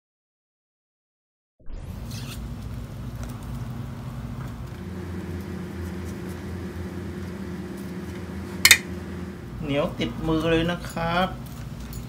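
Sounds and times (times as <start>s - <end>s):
low motor hum: 1.7s - 10.4s.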